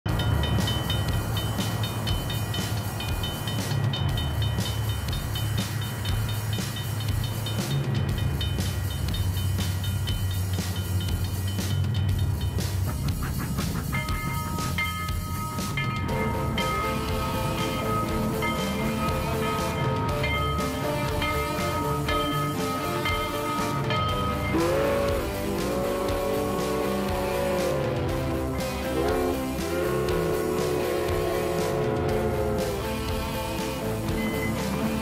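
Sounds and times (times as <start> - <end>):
train rumbling: 0.0 - 35.0
pitched musical notes: 0.1 - 35.0.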